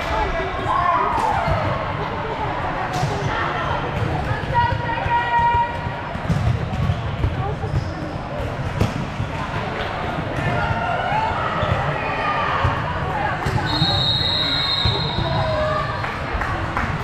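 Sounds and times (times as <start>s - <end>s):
voices of players and spectators: 0.0s - 17.0s
volleyballs thumping: 3.9s - 11.0s
referee's whistle blast: 13.6s - 15.3s.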